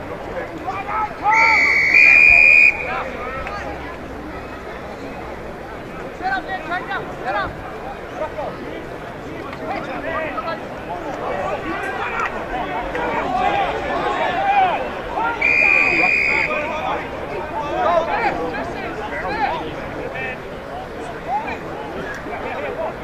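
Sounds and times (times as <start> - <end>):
crowd shouts and calls: 0.0 - 23.0
high whistle blast: 1.3 - 2.9, 15.4 - 16.6.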